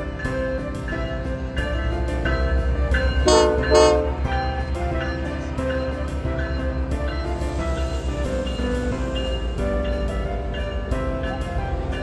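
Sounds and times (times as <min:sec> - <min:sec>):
background music with steady beat: 0:00.0 - 0:12.0
locomotive horn blasts: 0:03.2 - 0:04.3.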